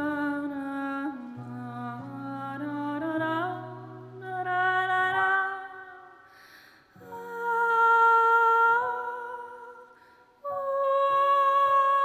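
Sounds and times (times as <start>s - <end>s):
woman singing a long soft note: 7.0s - 12.0s.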